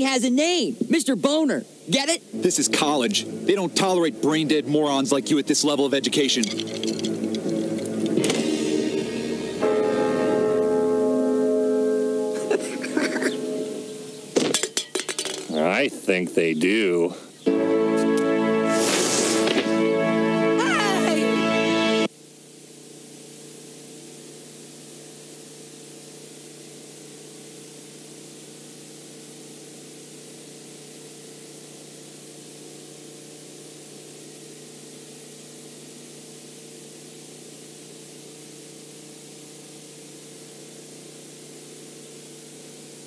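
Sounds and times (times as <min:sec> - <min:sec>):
steady hiss: 0:00.0 - 0:11.2, 0:18.6 - 0:20.0
low even hum: 0:00.0 - 0:18.4.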